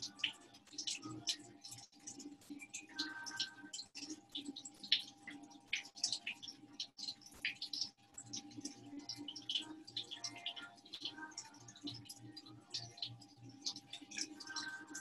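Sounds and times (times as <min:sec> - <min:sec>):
water trickling and dripping: 0:00.0 - 0:15.0.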